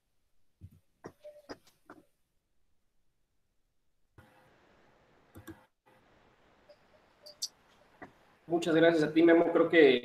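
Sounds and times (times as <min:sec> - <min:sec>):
faint room noise: 0:00.0 - 0:10.0
soft clicks: 0:05.3 - 0:05.7.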